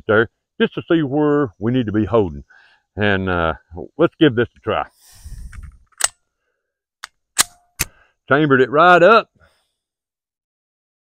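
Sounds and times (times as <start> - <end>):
pistol metal clacks: 6.0 - 6.2, 7.0 - 8.0
pistol metallic clicks: 6.0 - 6.2, 7.0 - 8.0.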